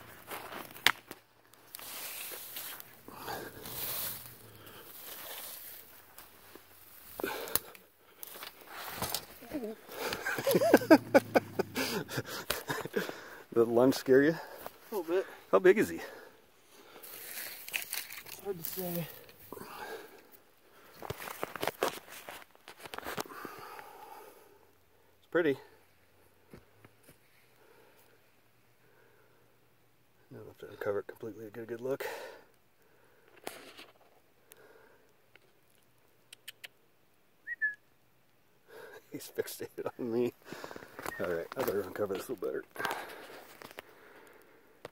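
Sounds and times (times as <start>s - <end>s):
footsteps crunching in snow: 1.7s - 7.2s
person laughing: 9.4s - 13.2s
brief rustle: 17.1s - 19.4s.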